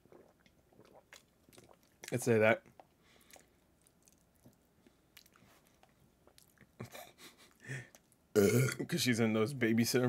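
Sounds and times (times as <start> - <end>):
mouth clicks and smacks: 0.0 - 4.6, 5.2 - 8.2
man swallowing: 8.4 - 8.8.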